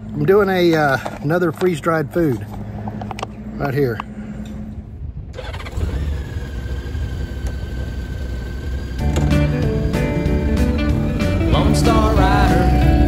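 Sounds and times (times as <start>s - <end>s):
motorcycle engine rumbling: 2.2s - 13.0s
music: 9.0s - 13.0s.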